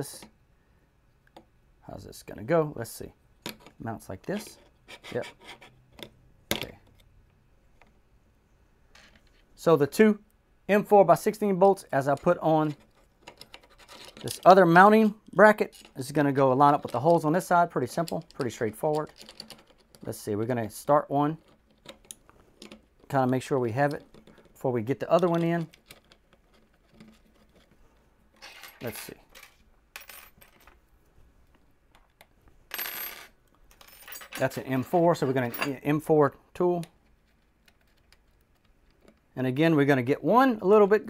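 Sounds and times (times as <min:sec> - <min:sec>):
faint clicks of handling a bolt: 0:21.3 - 0:30.8, 0:36.5 - 0:39.4.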